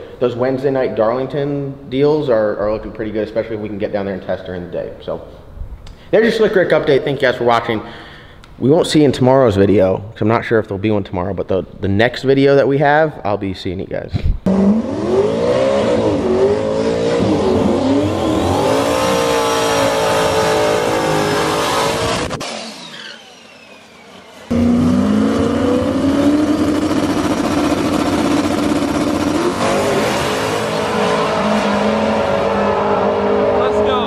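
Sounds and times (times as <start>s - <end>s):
drag racing car engine revving: 14.5s - 34.0s.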